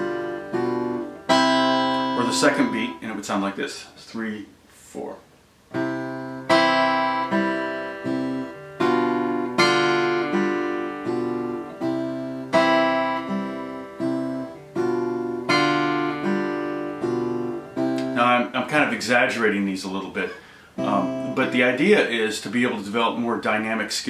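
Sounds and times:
fingerpicked acoustic guitar: 0:00.0 - 0:03.1, 0:05.7 - 0:23.1.

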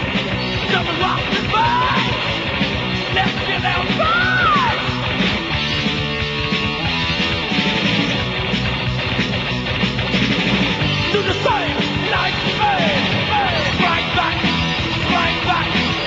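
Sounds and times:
heavy metal band playing: 0:00.0 - 0:16.0.

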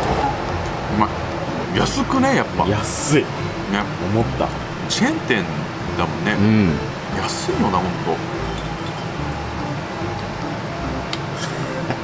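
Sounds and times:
soft low rumbles: 0:00.0 - 0:11.2
low hum: 0:00.0 - 0:12.0.

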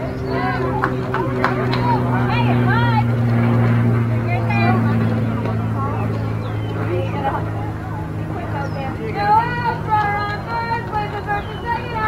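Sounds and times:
distant voices: 0:00.0 - 0:12.0
low mechanical hum: 0:00.0 - 0:12.0.

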